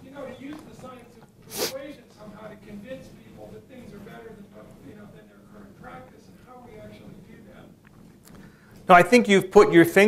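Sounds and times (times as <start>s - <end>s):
quiet speech in a room: 0.0s - 10.0s.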